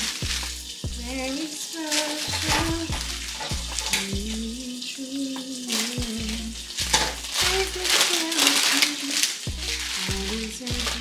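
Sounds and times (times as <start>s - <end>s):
deep bass notes dropping: 0.0s - 1.2s, 2.4s - 4.6s
cellophane crackling: 0.0s - 11.0s
music with sung melody: 0.0s - 11.0s.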